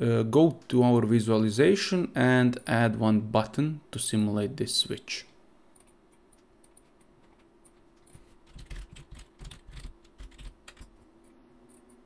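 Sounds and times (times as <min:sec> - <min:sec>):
keyboard typing: 0:05.8 - 0:11.0.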